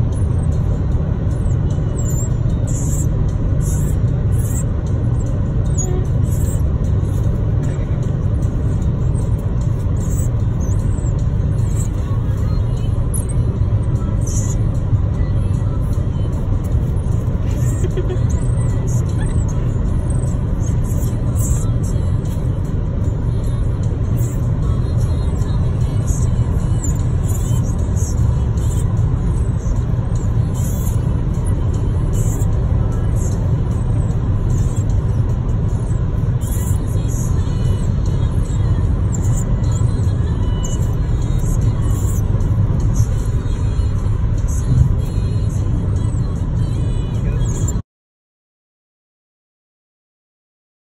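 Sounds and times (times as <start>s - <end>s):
music playing: 0.0s - 47.7s
car cabin road rumble: 0.0s - 47.8s.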